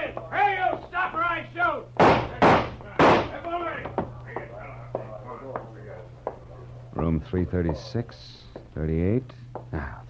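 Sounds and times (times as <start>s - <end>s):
gunshots: 2.0s - 3.4s.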